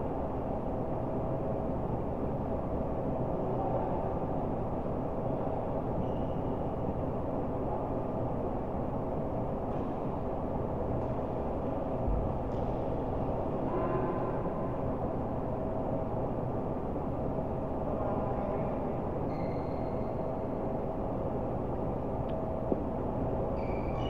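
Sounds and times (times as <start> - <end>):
faint hum: 0.0 - 24.0.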